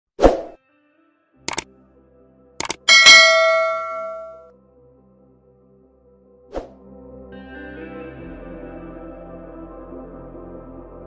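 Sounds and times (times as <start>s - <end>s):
quick mouse clicks: 2.6s - 2.8s.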